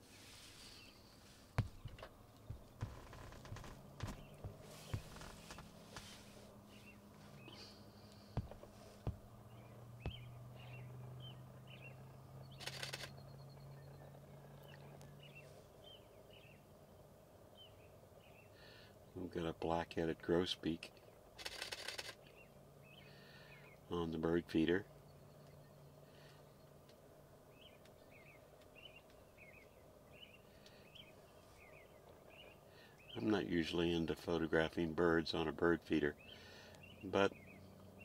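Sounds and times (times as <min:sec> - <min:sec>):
faint bird chirps: 0:00.0 - 0:19.2, 0:20.9 - 0:34.9, 0:35.9 - 0:38.0
faint low hum: 0:00.0 - 0:38.0
sharp clicks and knocks: 0:01.6 - 0:05.7, 0:10.1 - 0:10.3.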